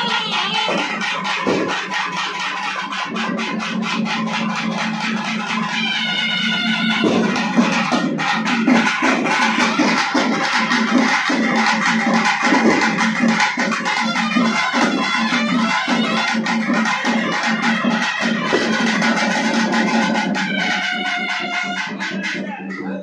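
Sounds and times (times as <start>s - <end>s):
drum band playing fast rhythm: 0.0s - 23.0s.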